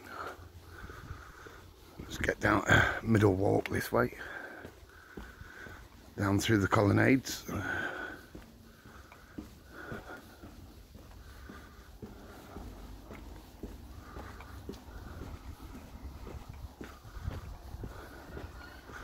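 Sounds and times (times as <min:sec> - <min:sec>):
person breathing: 0:00.0 - 0:03.2, 0:04.1 - 0:06.2, 0:07.4 - 0:19.0
footsteps on paved ramp: 0:00.0 - 0:19.0.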